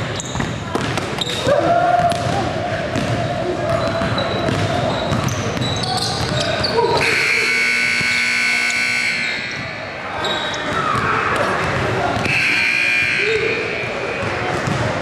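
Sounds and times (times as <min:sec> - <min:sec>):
basketballs bouncing on hardwood: 0:00.3 - 0:01.2, 0:02.0 - 0:07.0, 0:10.7 - 0:12.4, 0:14.2 - 0:15.0
gym buzzer blaring: 0:07.0 - 0:09.8, 0:12.3 - 0:14.0.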